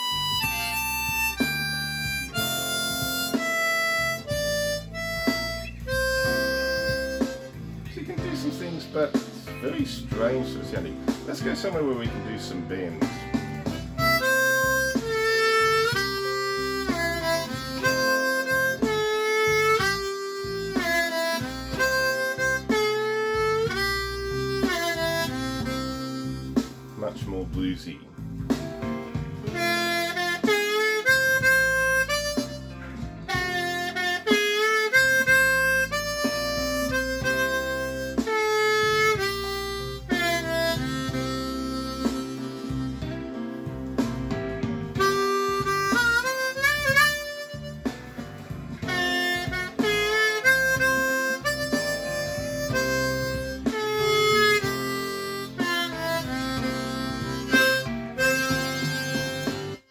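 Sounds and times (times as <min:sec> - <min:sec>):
blues backing track: 0:00.0 - 0:59.9
harmonica playing bluesy lick: 0:00.0 - 0:59.9.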